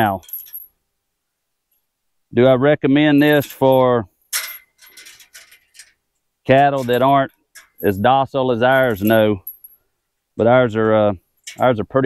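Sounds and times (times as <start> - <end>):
light metallic clinks: 0.0 - 0.8, 3.3 - 6.0, 6.7 - 8.1, 8.7 - 9.9, 11.2 - 11.8.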